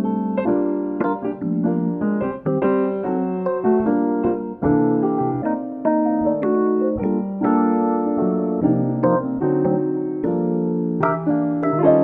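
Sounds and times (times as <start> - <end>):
gentle jazz piano: 0.0 - 12.0.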